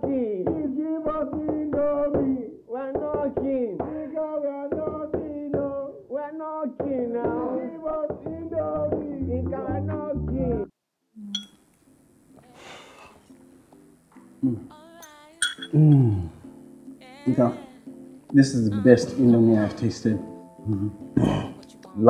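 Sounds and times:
person singing melodically: 0.0 - 11.4, 12.3 - 13.3, 14.4 - 22.0
light musical backing: 11.8 - 22.0.

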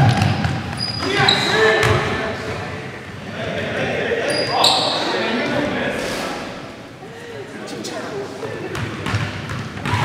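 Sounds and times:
basketball bouncing: 0.0 - 0.8, 8.7 - 10.0
sneaker squeaks on hardwood: 0.0 - 1.9.

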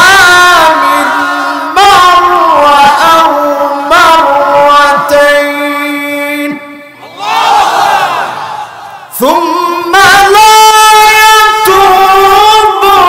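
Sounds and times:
man chanting: 0.0 - 6.9, 9.1 - 13.0.

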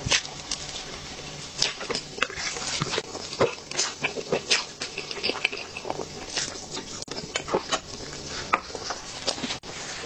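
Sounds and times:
mouth smacks and chewing: 1.6 - 9.6.

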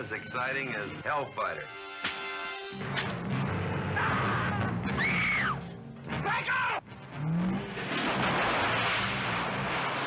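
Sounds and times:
explosion blast with water spray: 7.8 - 10.0.

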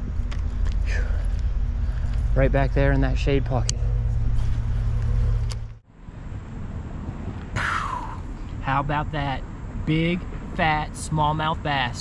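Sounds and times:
clothing rubbing on microphone: 3.8 - 5.8.

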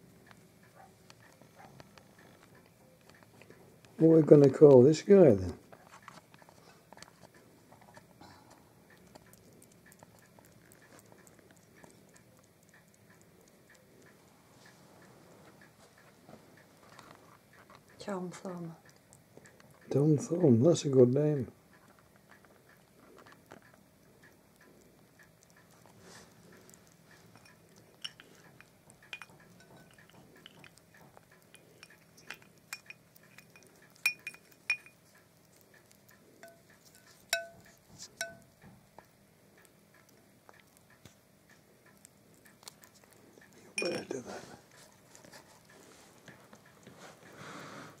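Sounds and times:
clicks and clinks on china plate: 27.3 - 30.8, 31.5 - 35.0, 36.4 - 38.5, 43.8 - 44.1.

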